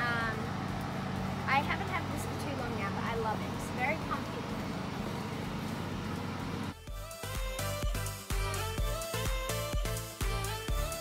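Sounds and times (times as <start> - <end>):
low outdoor hum: 0.0 - 7.8
background music with a beat: 6.7 - 11.0.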